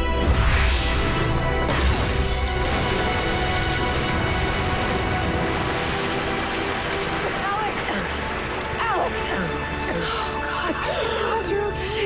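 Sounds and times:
background music: 0:00.0 - 0:12.0
water gushing and splashing: 0:00.3 - 0:10.4.

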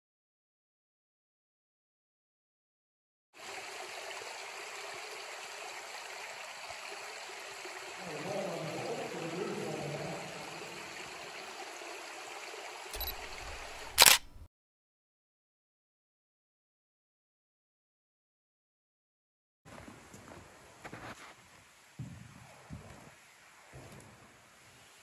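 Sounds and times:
trickling water: 0:03.4 - 0:14.0.

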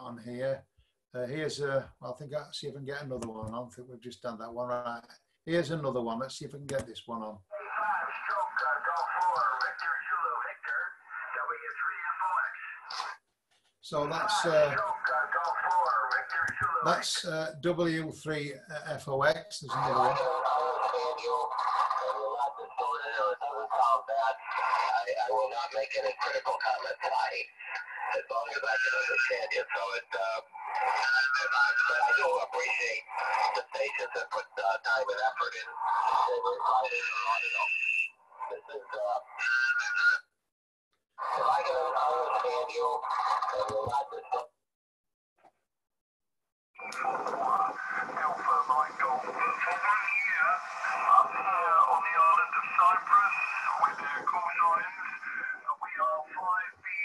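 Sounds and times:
radio voice from speaker: 0:07.5 - 0:13.2, 0:13.8 - 0:40.2, 0:41.2 - 0:44.5, 0:46.8 - 0:57.0.

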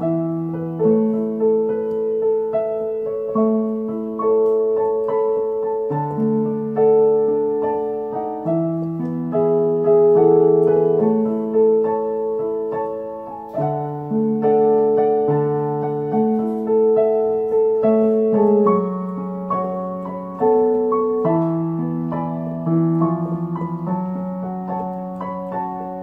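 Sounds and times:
digital piano playing hymn chords: 0:00.0 - 0:26.0.

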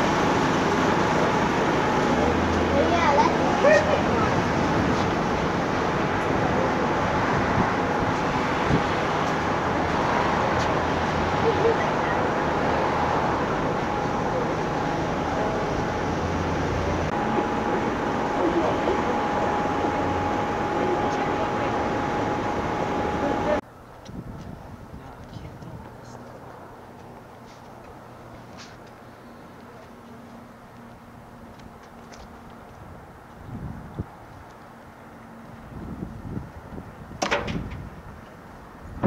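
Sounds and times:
road traffic: 0:00.0 - 0:39.0.

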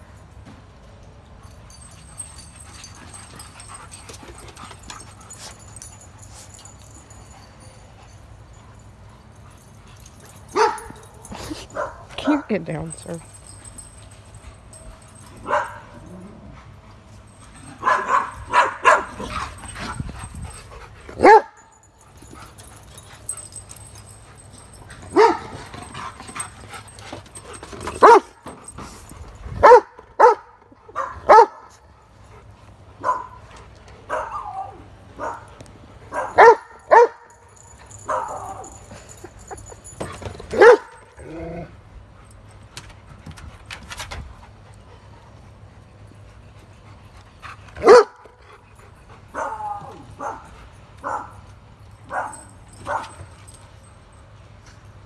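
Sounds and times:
dog barking: 0:17.8 - 0:19.3, 0:29.6 - 0:31.6, 0:36.2 - 0:37.2, 0:47.8 - 0:48.2.

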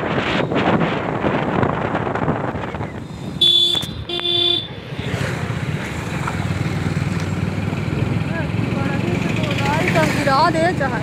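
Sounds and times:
wind on microphone: 0:00.0 - 0:04.2
motorcycle engine humming: 0:00.0 - 0:11.0
motorcycle horn blasts: 0:03.4 - 0:04.8.

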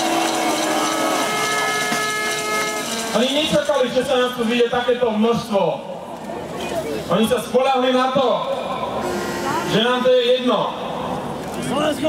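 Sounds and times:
steady held tones: 0:00.0 - 0:04.1
fast rattling clatter: 0:00.0 - 0:04.4.

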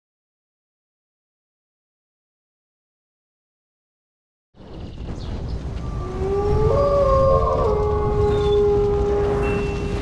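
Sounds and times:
low rumble: 0:04.7 - 0:10.0
wolf howls: 0:05.8 - 0:10.0.

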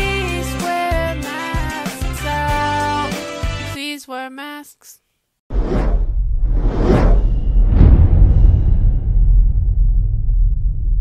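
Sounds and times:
cinematic whoosh: 0:05.5 - 0:11.0
deep rumble: 0:05.5 - 0:11.0.

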